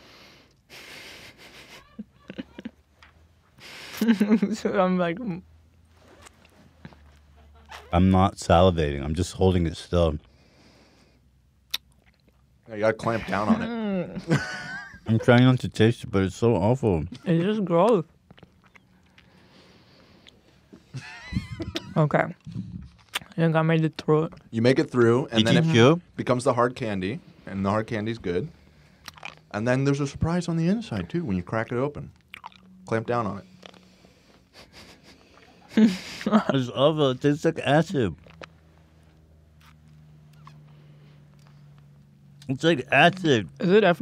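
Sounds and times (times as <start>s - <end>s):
short squeaky vocal sounds: 7.2s - 8.0s, 39.6s - 40.7s
wet mouth clicks: 11.6s - 12.5s, 18.2s - 19.3s, 22.4s - 23.4s, 29.0s - 29.4s, 32.2s - 32.7s, 33.5s - 33.9s, 38.2s - 38.6s, 39.6s - 40.6s.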